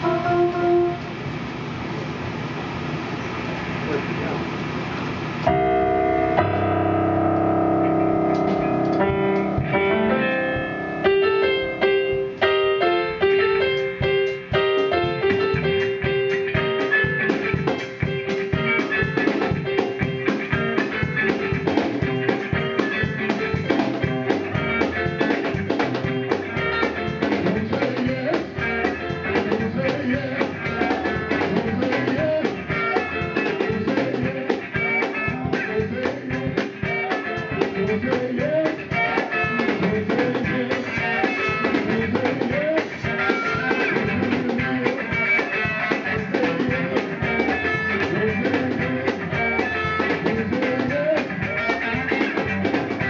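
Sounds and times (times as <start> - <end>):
drum kit: 0.0 - 1.4, 5.4 - 53.0
electric guitar: 0.0 - 2.1, 5.1 - 53.0
electric keyboard chords: 0.0 - 53.0.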